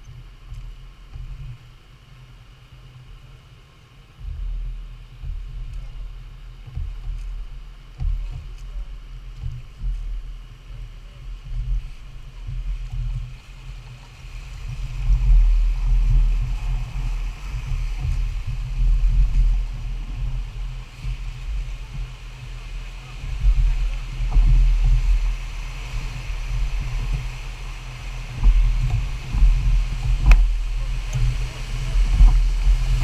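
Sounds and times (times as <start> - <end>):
rushing whitewater: 0.0 - 33.0
wind buffeting microphone: 0.0 - 33.0.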